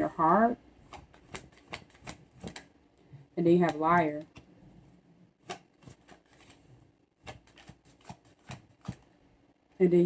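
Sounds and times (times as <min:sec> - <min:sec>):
cards being shuffled: 0:00.8 - 0:02.7, 0:05.4 - 0:09.1.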